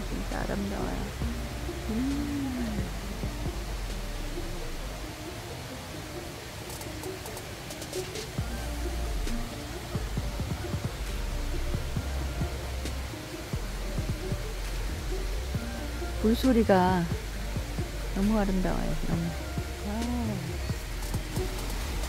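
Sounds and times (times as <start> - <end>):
low microphone rumble: 0.0 - 5.1
soft background music: 0.0 - 22.0
stream water flowing: 0.0 - 22.0.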